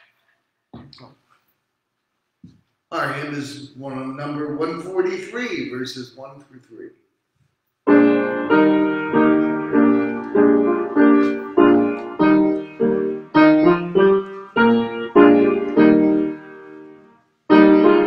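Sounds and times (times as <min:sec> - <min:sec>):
piano playing hymn chords: 0:07.9 - 0:18.0.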